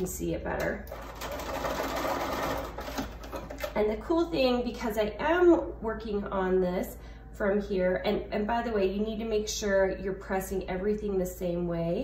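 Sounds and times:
sewing machine stitching: 0.9 - 3.8.

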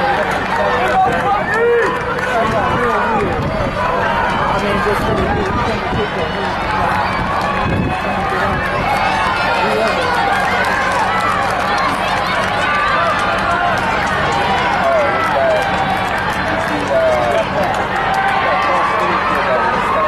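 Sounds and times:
crowd cheering and shouting: 0.0 - 20.0.

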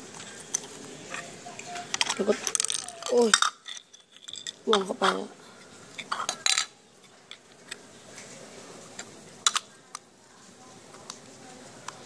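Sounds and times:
plastic parts clattering on stone: 0.2 - 5.3, 6.0 - 6.7.

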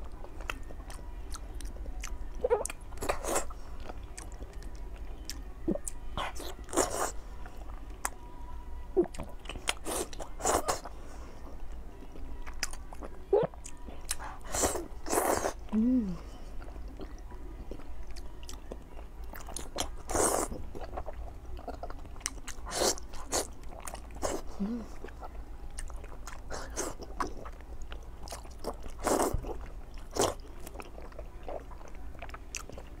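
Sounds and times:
wet chewing and slurping: 19.3 - 32.9.

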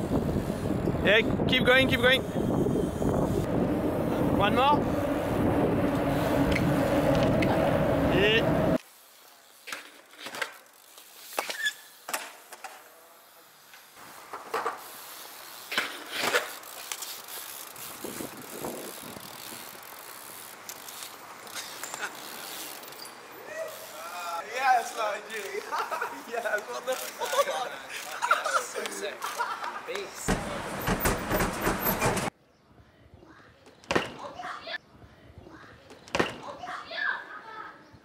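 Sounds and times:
loud rushing noise: 3.4 - 8.8
bike wheels knocking on stone: 30.2 - 32.3.

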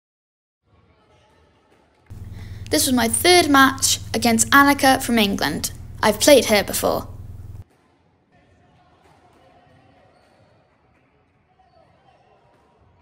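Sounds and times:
distant voices: 2.1 - 7.6
steady low hum: 2.1 - 7.6.

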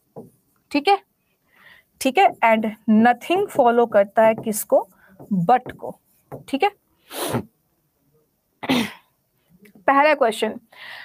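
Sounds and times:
woman's bursts of breath: 1.5 - 1.9, 10.7 - 11.0.

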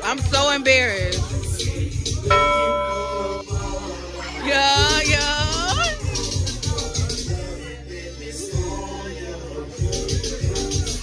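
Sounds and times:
music with heavy bass beat: 0.2 - 3.9, 4.6 - 7.6, 9.8 - 11.0
bell-like chime: 2.3 - 3.6
person singing: 2.3 - 11.0.

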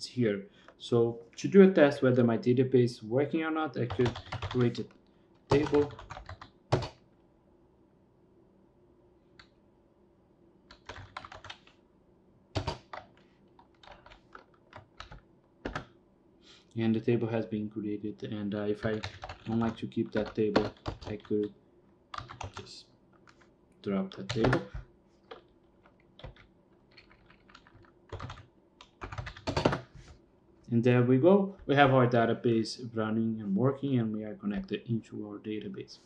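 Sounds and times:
typing on computer keyboard: 3.9 - 4.9, 5.5 - 7.0, 10.7 - 11.7, 12.6 - 15.9, 18.8 - 21.3, 22.1 - 23.4, 24.1 - 29.9.

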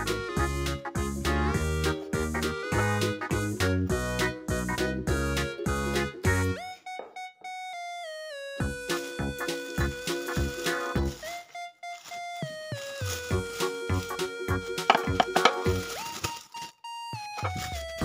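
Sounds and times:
synth melody over bouncy beat: 0.0 - 18.0.

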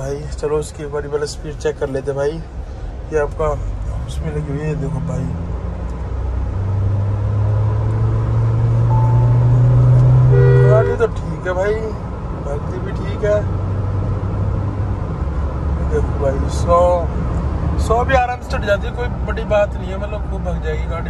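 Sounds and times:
road noise inside car: 0.0 - 21.0
car engine accelerating: 3.2 - 20.9
short tone: 8.8 - 11.0.

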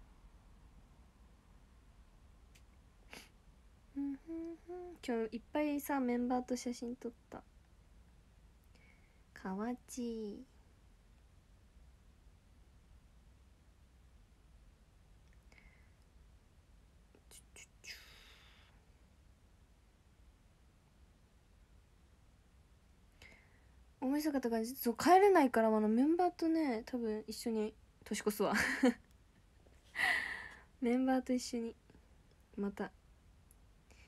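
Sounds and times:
soft lip clicks: 2.5 - 2.8
woman humming: 3.9 - 5.4.

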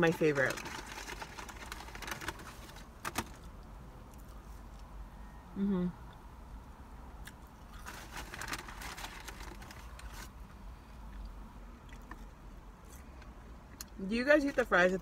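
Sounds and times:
low steady rumble: 0.0 - 15.0.

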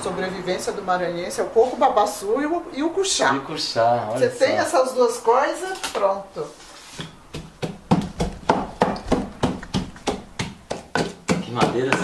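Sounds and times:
wooden pestle pounding in mortar: 7.0 - 12.0.

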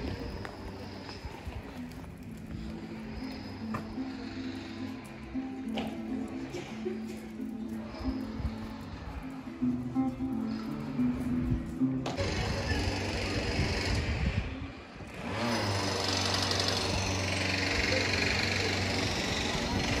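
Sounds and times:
rushing street noise: 0.0 - 20.0
acoustic guitar plucked melody: 1.8 - 13.6.

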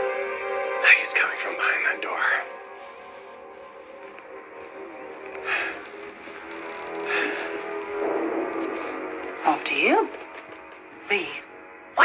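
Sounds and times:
suspenseful music of held tones: 0.0 - 12.0.

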